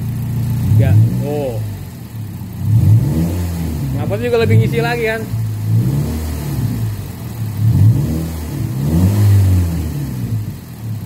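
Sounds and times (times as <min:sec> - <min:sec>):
car engine revving: 0:00.0 - 0:11.0.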